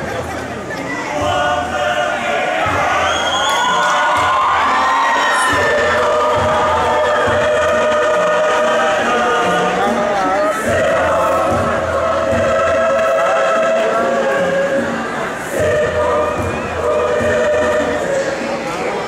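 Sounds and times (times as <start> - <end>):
crowd cheering: 0.0 - 19.0
large choir singing: 0.9 - 19.0.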